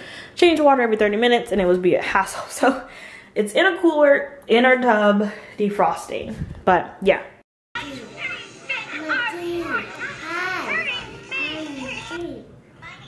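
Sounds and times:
toddler babbling: 0:09.0 - 0:13.0.

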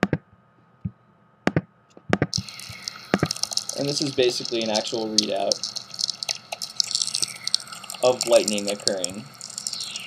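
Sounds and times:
radio crackling and popping: 0:00.0 - 0:10.0
sharp clicks: 0:01.5 - 0:10.0
steady hiss: 0:02.3 - 0:10.0.

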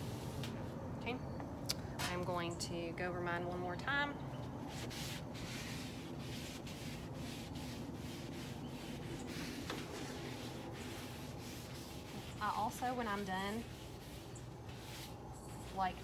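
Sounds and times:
paper towel wiping griddle: 0:04.6 - 0:16.0.

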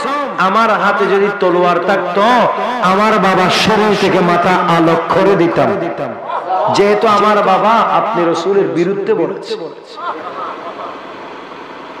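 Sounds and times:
amplified speech: 0:00.0 - 0:10.8
background hum and murmur: 0:00.0 - 0:12.0.

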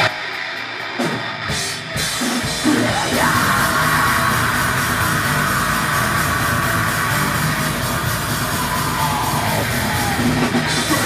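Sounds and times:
bass guitar: 0:00.0 - 0:11.0
drum kit: 0:00.0 - 0:11.0
electric guitar: 0:00.0 - 0:11.0
person singing: 0:02.6 - 0:11.0.

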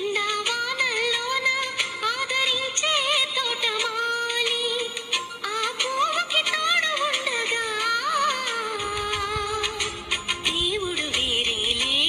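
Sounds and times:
woman singing: 0:00.0 - 0:12.0
instrumental accompaniment: 0:00.5 - 0:12.0.

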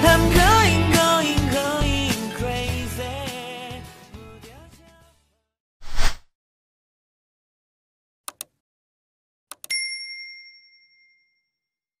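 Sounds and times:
high bell-like ding: 0:09.7 - 0:11.7.

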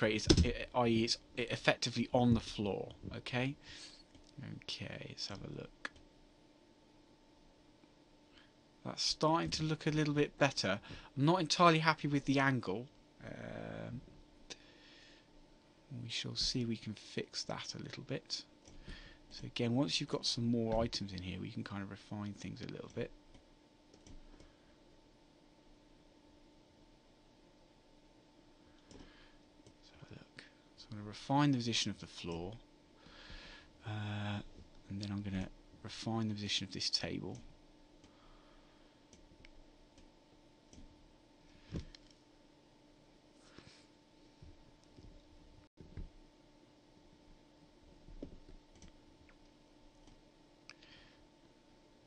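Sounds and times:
faint steady hum: 0:00.0 - 0:52.0
computer mouse clicks: 0:23.3 - 0:24.5.

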